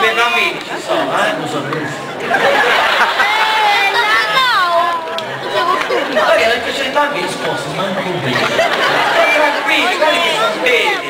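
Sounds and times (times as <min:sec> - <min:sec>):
voices talking: 0:00.0 - 0:11.0.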